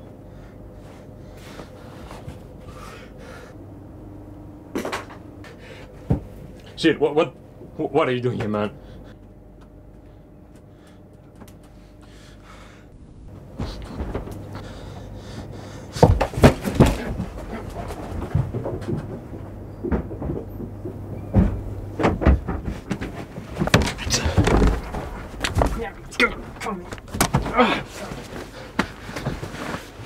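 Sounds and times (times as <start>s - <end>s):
heavy breathing: 0.2s - 3.8s, 5.4s - 6.8s, 8.8s - 9.3s, 10.0s - 18.1s, 23.8s - 30.0s
thumps and knocks of bodies: 13.4s - 14.6s, 15.9s - 30.0s
people grunting: 16.4s - 18.0s, 23.9s - 29.4s.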